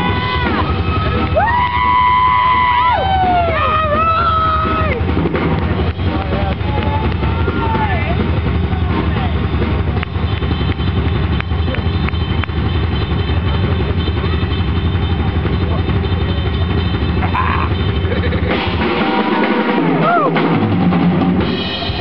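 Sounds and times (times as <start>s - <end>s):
voices shouting: 0.0s - 20.5s
drum kit played hard: 0.0s - 22.0s.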